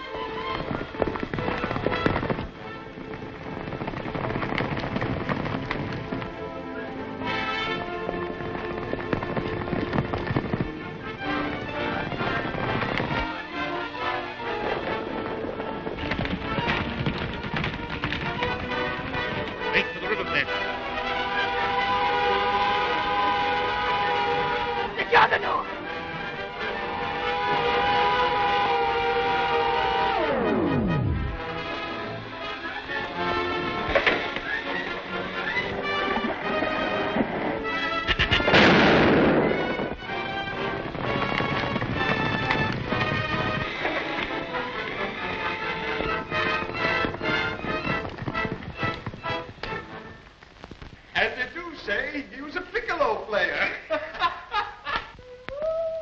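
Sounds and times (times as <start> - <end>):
dramatic orchestral music: 0.0 - 3.7, 5.7 - 50.2
loud explosion: 30.2 - 31.7, 36.1 - 44.6.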